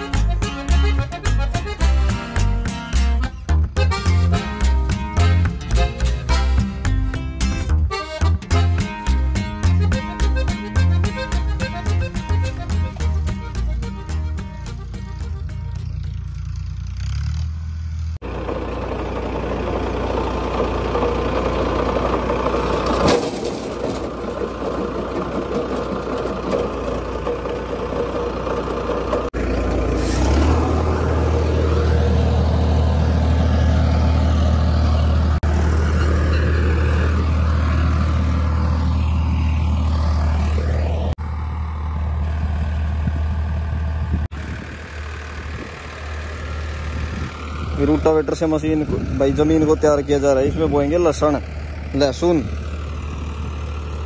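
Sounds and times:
tractor engine running: 0:00.0 - 0:54.0.

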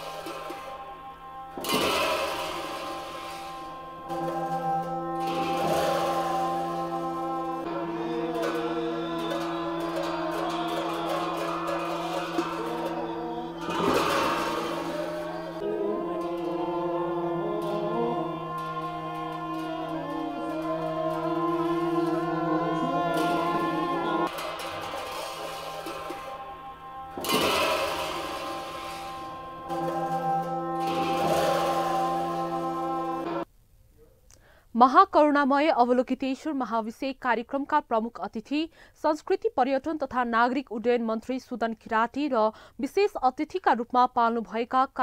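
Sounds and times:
reed horns playing melody: 0:00.0 - 0:33.4
steady low drone: 0:00.0 - 0:33.5.

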